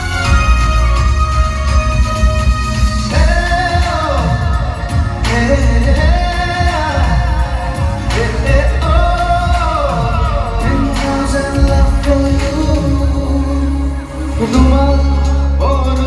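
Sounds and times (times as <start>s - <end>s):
music with heavy bass: 0.0s - 16.0s
man singing into a microphone: 3.0s - 16.0s.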